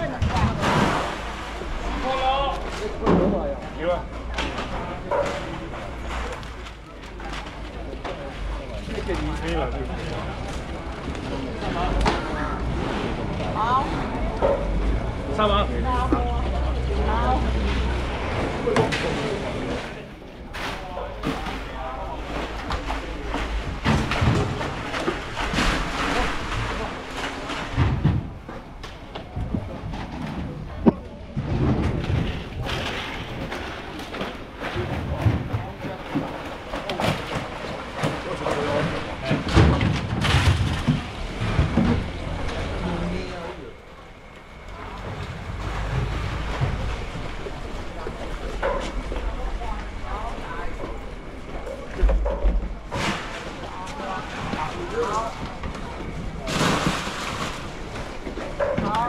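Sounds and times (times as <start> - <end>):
workers' voices: 0.0 - 59.0
low rumble: 38.8 - 56.4.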